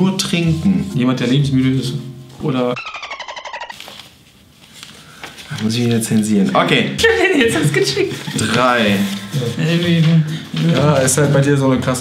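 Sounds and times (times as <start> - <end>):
pulsing censor tone: 2.8 - 3.8.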